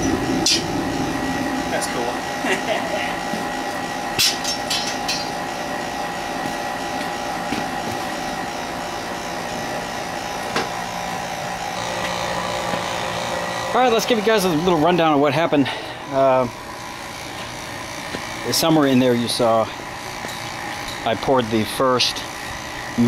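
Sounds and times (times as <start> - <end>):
furnace burner blower humming: 0.0 - 23.0
metal tool clanks: 4.2 - 5.3.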